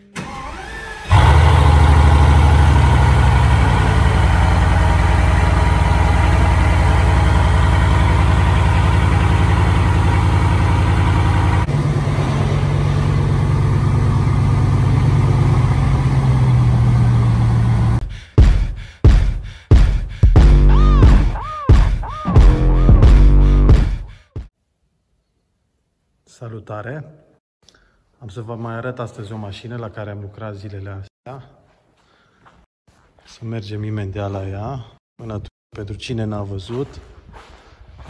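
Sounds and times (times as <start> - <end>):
starter whine: 0.2 - 18.0
car engine idling: 1.1 - 18.0.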